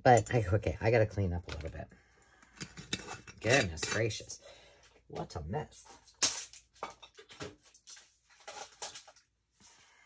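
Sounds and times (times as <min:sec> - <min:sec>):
paper rustling: 0:07.3 - 0:09.3.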